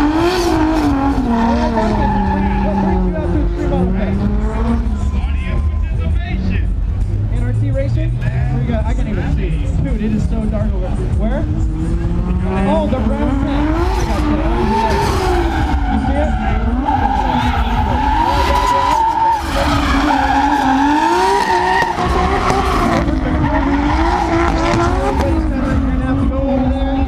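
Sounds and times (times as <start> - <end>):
car engine revving: 0.0 - 27.0
tyres screeching on tarmac: 0.4 - 3.7, 14.0 - 25.5.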